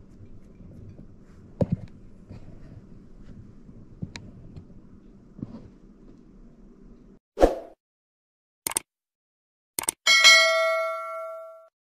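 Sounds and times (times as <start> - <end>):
bell ding chime: 10.1 - 11.7.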